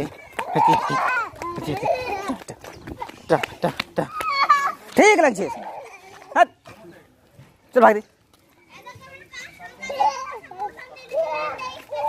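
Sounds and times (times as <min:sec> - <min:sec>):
toddler crying: 0:00.3 - 0:02.3
toddler yelping: 0:00.3 - 0:02.3, 0:09.8 - 0:12.0.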